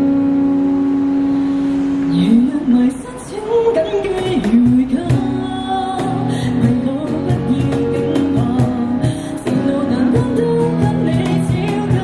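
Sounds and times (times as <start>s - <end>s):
band holding sustained note: 0.0s - 2.7s.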